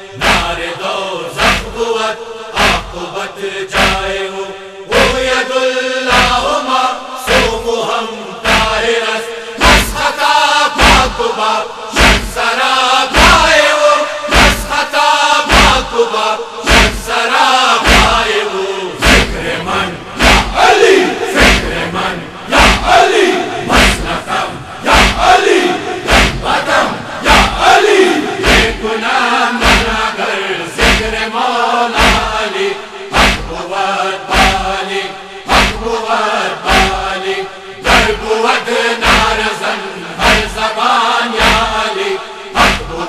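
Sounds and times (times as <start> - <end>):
men chanting a lament: 0.0 - 43.0
chest-beating thumps: 23.6 - 24.3, 24.9 - 25.3.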